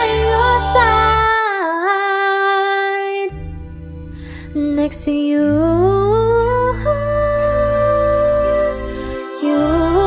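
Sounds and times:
low sustained bass voice: 0:00.0 - 0:02.2, 0:03.1 - 0:10.0.

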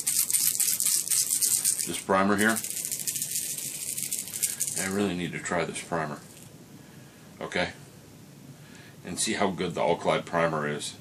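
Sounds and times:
aerosol can ball rattling: 0:00.0 - 0:05.0.

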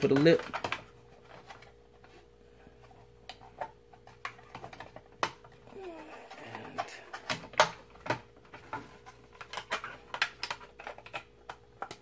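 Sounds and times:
hard plastic parts clicking: 0:00.0 - 0:01.7, 0:03.3 - 0:12.0
faint steady hum: 0:00.0 - 0:12.0
person humming: 0:05.7 - 0:07.2.

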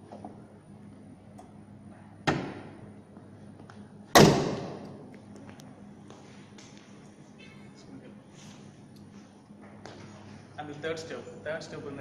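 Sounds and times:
car bonnet slamming shut: 0:04.1 - 0:04.8.

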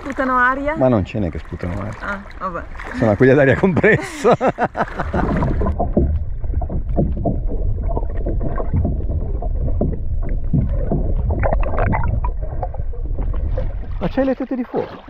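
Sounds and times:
underwater bubbling churning water: 0:00.0 - 0:15.0.

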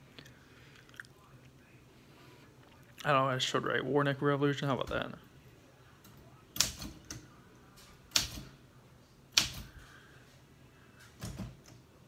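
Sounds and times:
soft typewriter clicks: 0:08.1 - 0:08.5.

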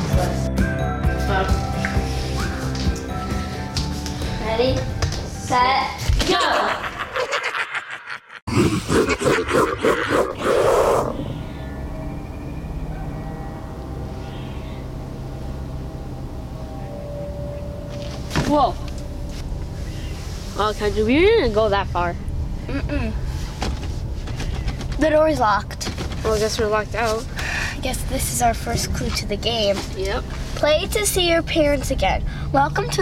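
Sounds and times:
pulsing animal-like growl and roar: 0:08.5 - 0:11.6.

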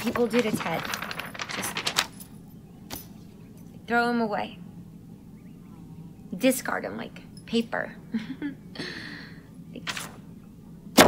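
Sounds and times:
paper rustling and crinkling: 0:00.0 - 0:02.4.

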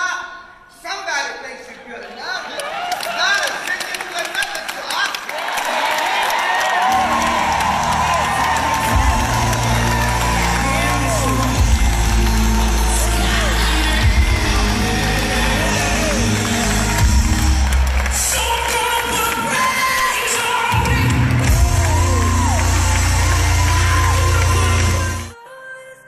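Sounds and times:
gospel music over loudspeakers: 0:00.0 - 0:26.0
crowd cheering and whooping: 0:02.6 - 0:03.5, 0:05.3 - 0:25.4
people singing: 0:07.0 - 0:26.0.

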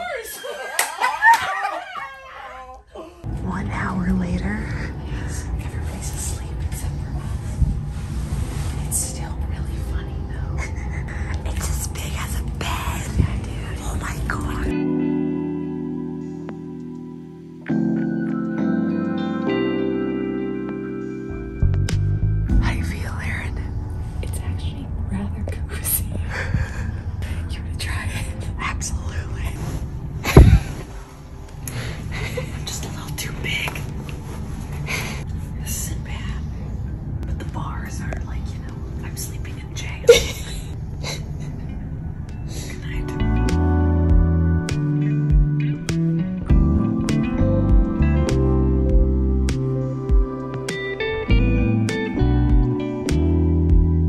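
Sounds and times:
low room rumble: 0:01.8 - 0:17.7, 0:19.5 - 0:54.0
low steady hum: 0:02.6 - 0:17.7, 0:19.8 - 0:54.0
person whispering softly: 0:04.3 - 0:07.8, 0:08.4 - 0:14.7, 0:22.6 - 0:26.3, 0:27.2 - 0:29.8, 0:32.5 - 0:34.1, 0:37.3 - 0:40.1, 0:42.5 - 0:43.2
blankets and pillows rustling: 0:05.2 - 0:10.5, 0:28.1 - 0:35.8
soft thump: 0:30.3 - 0:30.7.

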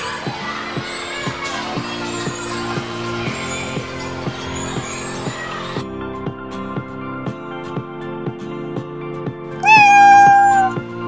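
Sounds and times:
background music with steady beat: 0:00.0 - 0:11.0
cat meowing: 0:09.6 - 0:10.8.

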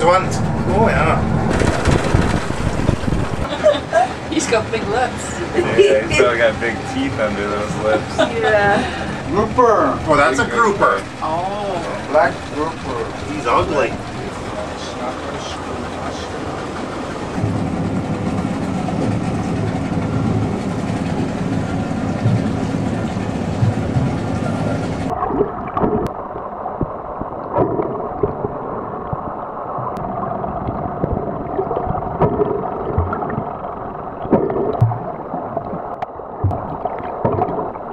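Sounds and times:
boat engine rumble: 0:00.0 - 0:37.9
muffled underwater gurgling: 0:00.0 - 0:37.9.

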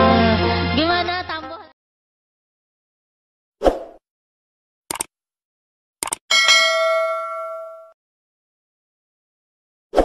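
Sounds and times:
bright bell ding: 0:06.3 - 0:08.0.

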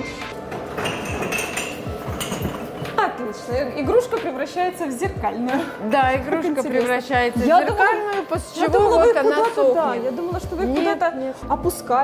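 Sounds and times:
glass balls clinking: 0:00.0 - 0:03.0
background music with a beat: 0:00.0 - 0:09.6.

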